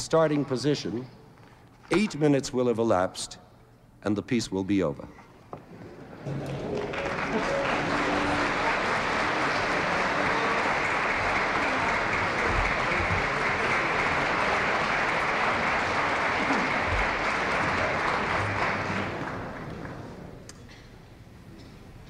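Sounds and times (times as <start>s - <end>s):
audience applauding: 6.2s - 20.3s.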